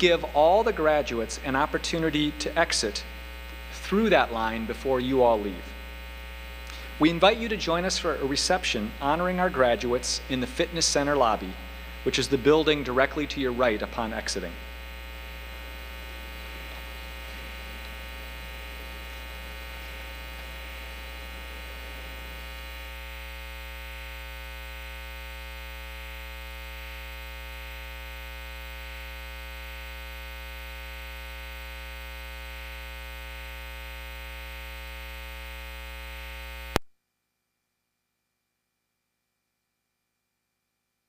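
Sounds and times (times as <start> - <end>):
electrical mains hum: 0.0 - 36.9.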